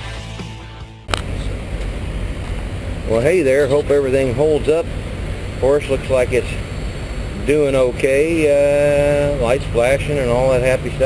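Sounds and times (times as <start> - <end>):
low vehicle rumble: 0.0 - 11.0.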